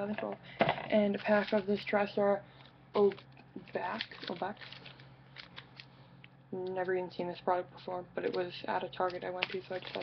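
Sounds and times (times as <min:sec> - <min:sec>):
foil wrapper crinkling: 0:01.1 - 0:01.8, 0:03.0 - 0:05.9, 0:08.9 - 0:10.0.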